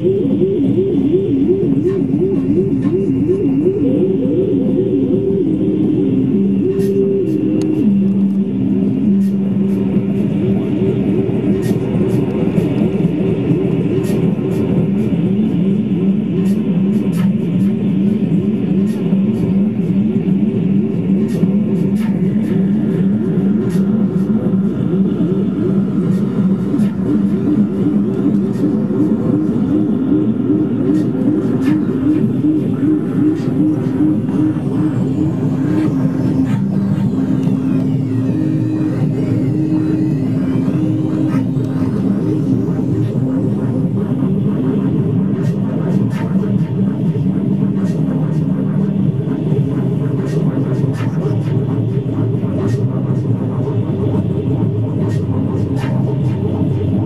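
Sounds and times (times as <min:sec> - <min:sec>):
low tone stepping between pitches: 0:00.0 - 0:13.9
buzzy fluttering low drone: 0:00.0 - 0:57.0.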